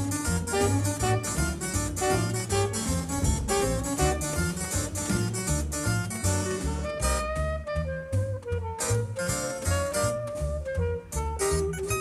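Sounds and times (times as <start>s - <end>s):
plucked string line: 0.0s - 8.5s
pulsing bass: 0.0s - 12.0s.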